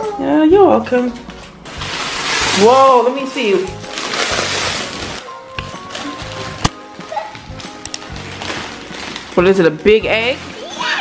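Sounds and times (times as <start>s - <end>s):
background music: 0.0s - 11.0s
foil crinkling and tearing: 1.6s - 11.0s.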